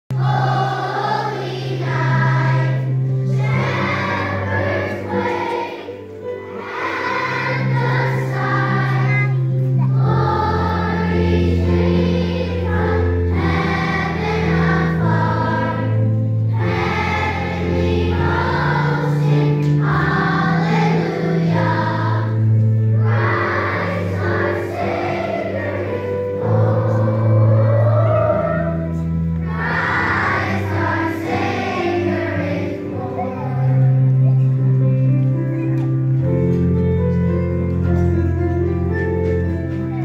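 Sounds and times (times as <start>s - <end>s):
children's choir singing: 0.1s - 35.4s
low held accompaniment notes: 0.1s - 40.0s.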